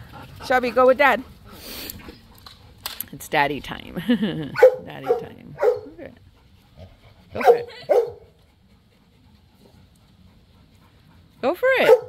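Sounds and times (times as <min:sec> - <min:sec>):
faint yard background: 0:00.0 - 0:12.0
dog barking: 0:04.6 - 0:06.0, 0:07.4 - 0:08.3, 0:11.8 - 0:12.0.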